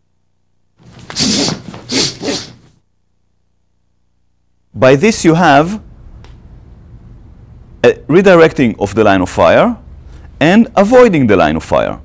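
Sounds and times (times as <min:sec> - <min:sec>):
clothing rustling and swishing: 0:00.8 - 0:02.6.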